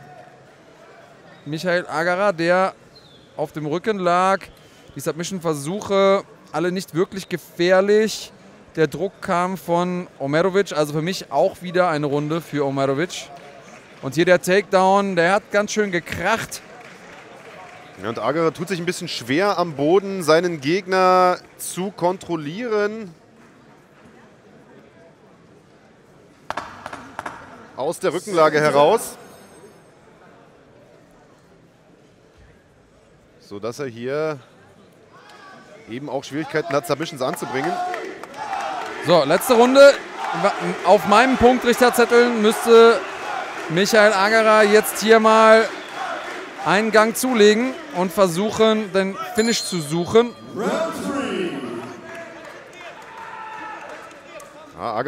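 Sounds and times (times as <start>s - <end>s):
faint background murmur: 23.1s - 27.8s, 29.0s - 36.0s
people calling out: 49.1s - 52.4s
loud burst of voices: 50.2s - 52.7s.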